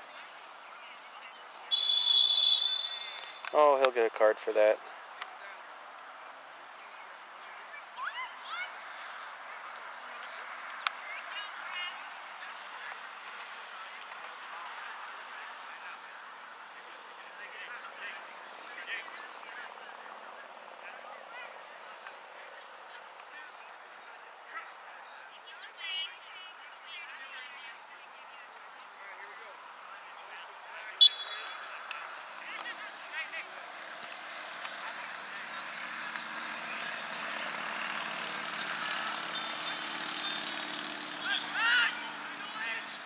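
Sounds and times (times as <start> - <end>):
outdoor background noise: 0.0 - 43.0
distant shouts of people: 0.2 - 3.6, 6.9 - 28.4, 29.0 - 43.0.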